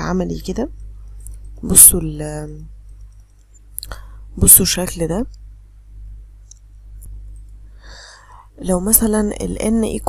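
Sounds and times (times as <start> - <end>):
person speaking: 0.0 - 2.8, 3.8 - 5.3, 8.6 - 10.0
low electrical hum: 0.0 - 10.0.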